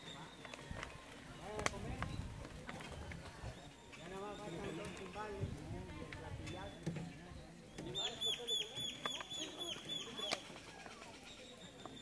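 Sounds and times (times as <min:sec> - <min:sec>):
indistinct voices talking: 0:00.0 - 0:12.0.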